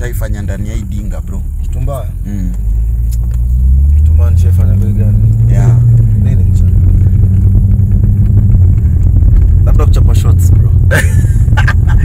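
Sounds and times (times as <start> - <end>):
car engine and tyres rumbling: 0.0 - 12.0.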